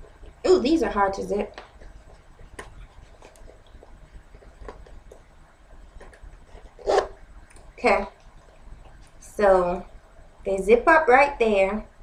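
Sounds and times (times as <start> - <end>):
boot zipper clicks and scrapes: 6.0 - 7.2.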